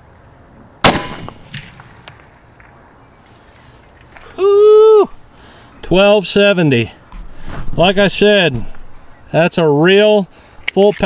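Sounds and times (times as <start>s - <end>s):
pistol shot with echo: 0.8s - 1.6s.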